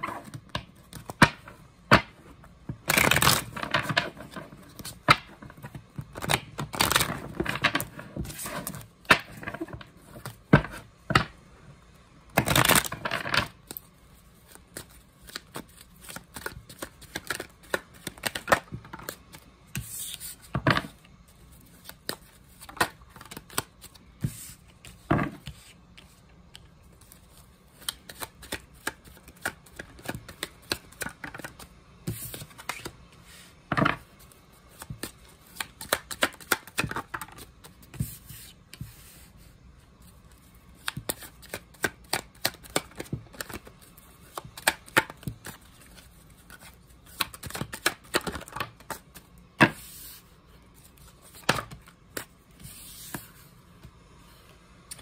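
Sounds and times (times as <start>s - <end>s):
cards being shuffled: 2.9s - 10.8s, 12.4s - 21.0s, 21.7s - 39.2s, 40.4s - 50.2s.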